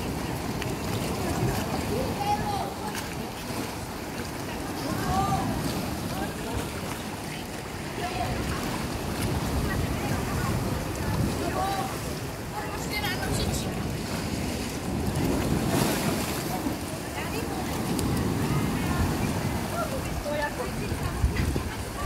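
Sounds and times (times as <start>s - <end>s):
waves breaking over rocks: 0.0s - 22.0s
wind buffeting microphone: 0.0s - 22.0s.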